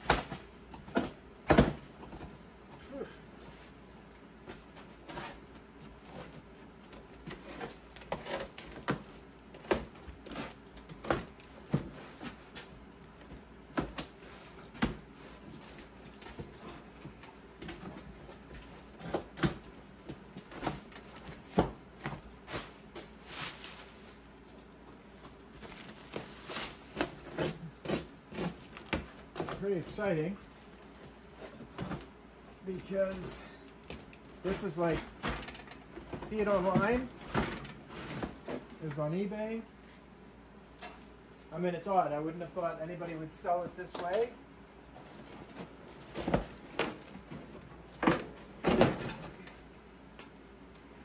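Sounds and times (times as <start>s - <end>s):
cardboard and plastic wrap rustling: 0.0s - 39.6s, 43.8s - 49.8s.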